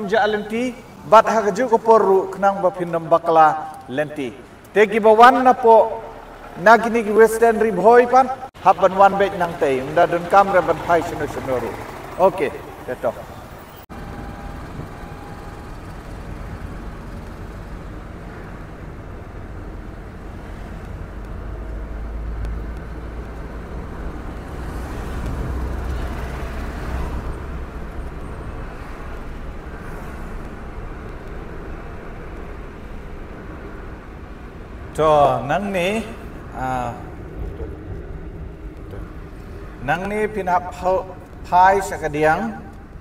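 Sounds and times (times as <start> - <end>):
car cabin road rumble: 35.8 - 41.5.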